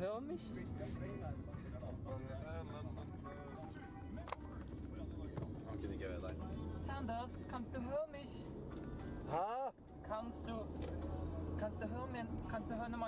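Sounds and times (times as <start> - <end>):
music: 0.0 - 13.0
voices: 0.0 - 13.0.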